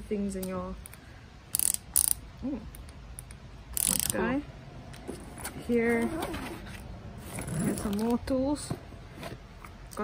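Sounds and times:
hinge ratcheting rasps: 1.5s - 2.2s, 3.2s - 4.3s.

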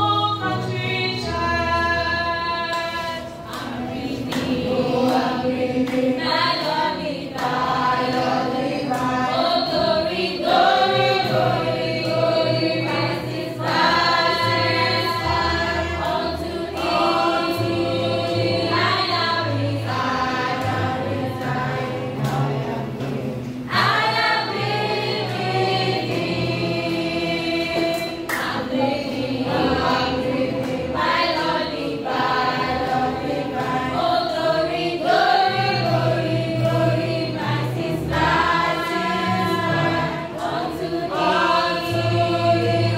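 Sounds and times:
children's choir singing: 0.0s - 42.9s.

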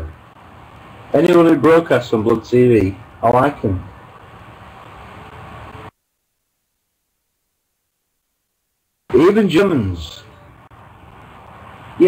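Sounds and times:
low hiss of microphone noise: 0.0s - 12.0s.

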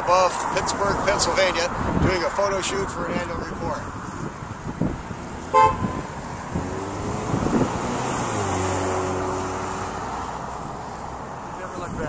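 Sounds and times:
distant city traffic: 0.0s - 12.0s
vehicle horn toot: 5.5s - 6.1s.

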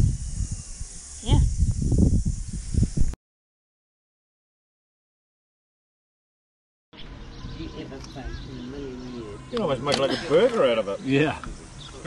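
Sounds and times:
steady high hiss: 0.0s - 3.2s, 8.6s - 12.0s.

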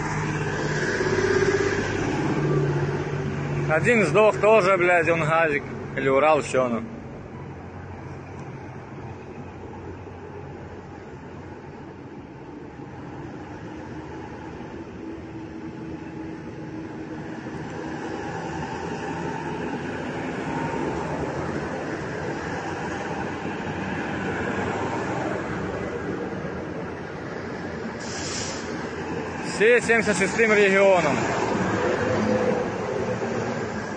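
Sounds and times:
trucks driving past: 0.0s - 33.9s.

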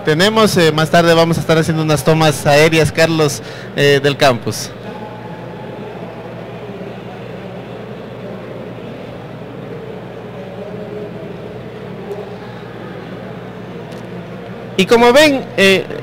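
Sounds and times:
event hall rumbling din: 0.0s - 16.0s
low electrical hum: 0.0s - 16.0s.

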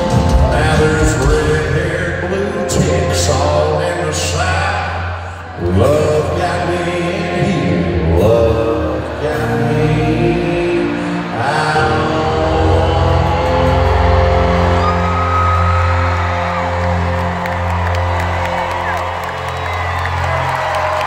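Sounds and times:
man singing: 0.0s - 15.0s
live country band: 0.0s - 21.0s.

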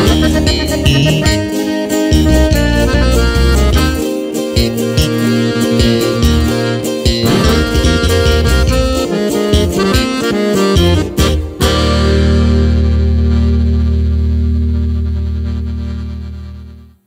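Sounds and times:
accordion bass and guitar band: 0.0s - 16.9s.

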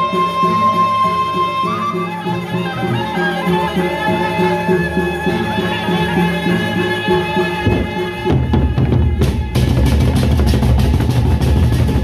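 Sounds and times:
large drums beaten rapidly: 7.6s - 12.0s.

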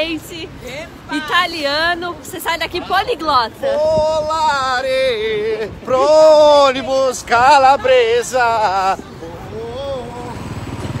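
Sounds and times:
faint voices: 0.0s - 11.0s
vehicle engine running: 8.5s - 11.0s.

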